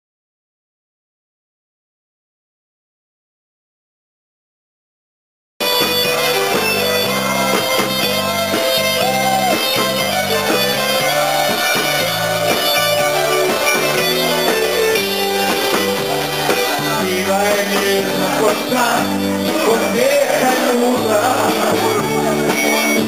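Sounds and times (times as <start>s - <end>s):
bass line: 5.6s - 23.0s
drums: 5.6s - 23.0s
electric guitar: 5.6s - 23.0s
live band playing: 5.6s - 23.0s.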